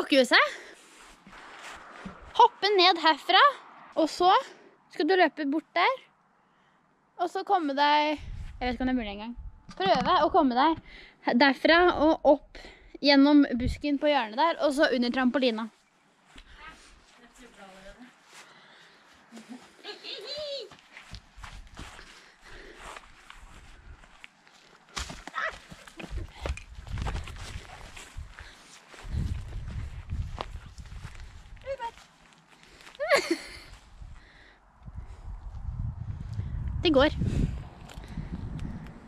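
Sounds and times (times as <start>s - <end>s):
footsteps rustling through grass: 0.8s - 2.3s, 15.7s - 26.1s, 26.7s - 33.9s
microphone rumble: 29.1s - 31.7s, 34.8s - 39.0s.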